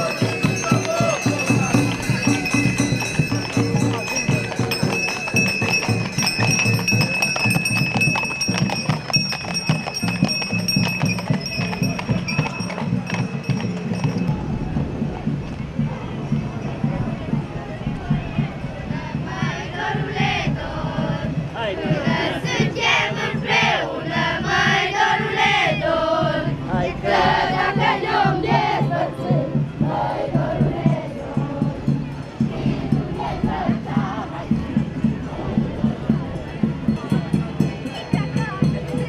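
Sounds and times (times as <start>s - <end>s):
horse hooves clopping on asphalt: 0.0s - 15.6s
folk fiddle music: 0.0s - 36.8s
crowd voices: 0.0s - 39.0s.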